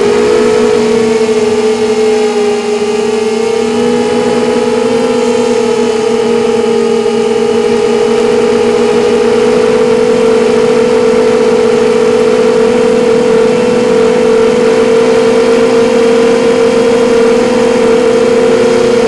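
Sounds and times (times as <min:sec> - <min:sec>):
quadcopter motors whining drone: 0:00.0 - 0:19.0.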